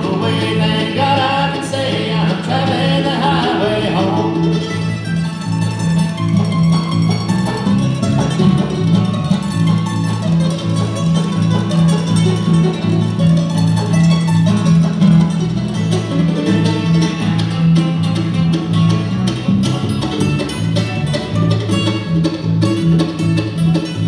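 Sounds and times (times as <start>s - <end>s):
person singing: 0.0s - 4.6s
bass line: 0.0s - 24.0s
mandolin picked fast: 0.0s - 24.0s
strummed acoustic guitar: 0.0s - 24.0s.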